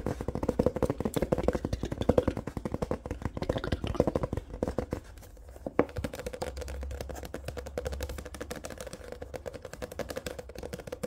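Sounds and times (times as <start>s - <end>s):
fingertips tapping on book cover: 0.0s - 11.0s.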